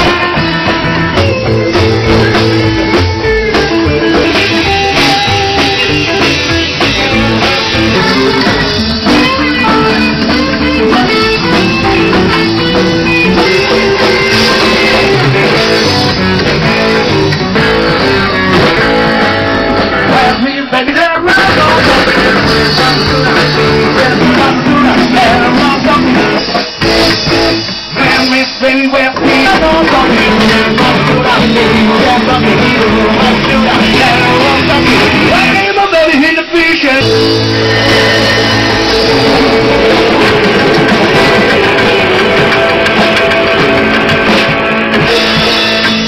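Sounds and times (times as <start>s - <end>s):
electric guitar: 0.0s - 46.0s
live blues band playing: 0.0s - 46.0s.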